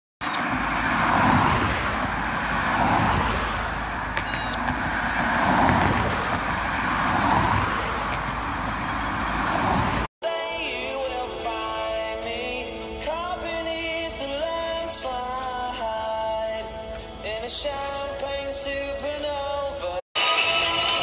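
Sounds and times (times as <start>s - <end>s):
road traffic passing: 0.2s - 10.1s.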